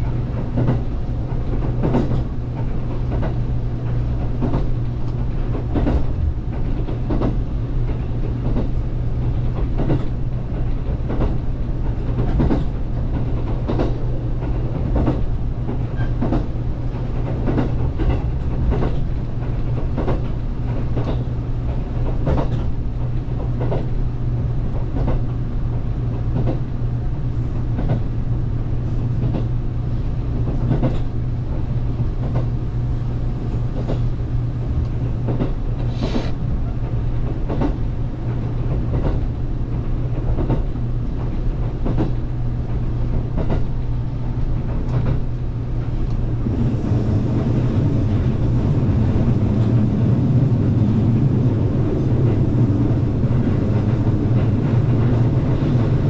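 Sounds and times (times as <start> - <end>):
wheels clicking over rail joints: 0.0 - 24.0, 36.8 - 47.0
train interior low hum: 0.0 - 56.0.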